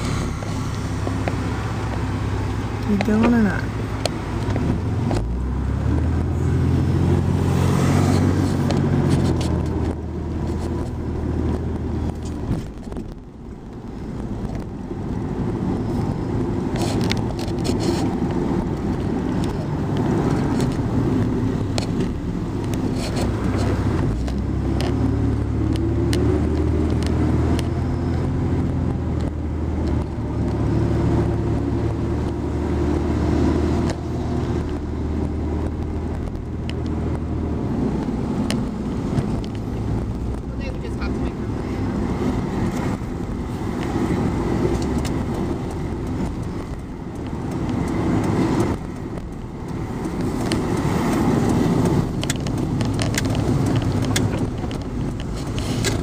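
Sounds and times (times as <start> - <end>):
car engine drone: 0.0 - 56.0
tyre and road noise: 0.0 - 56.0.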